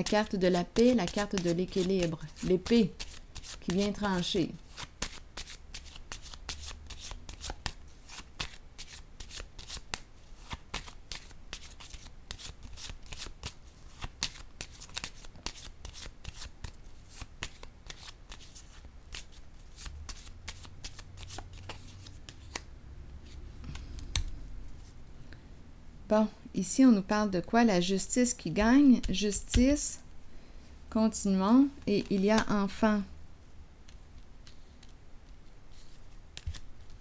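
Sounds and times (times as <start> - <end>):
cards being shuffled: 0.0 - 25.0, 33.9 - 37.0.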